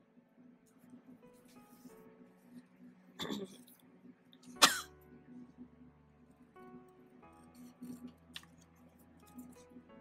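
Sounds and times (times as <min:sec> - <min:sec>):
person coughing: 0:03.2 - 0:03.6, 0:04.6 - 0:05.0.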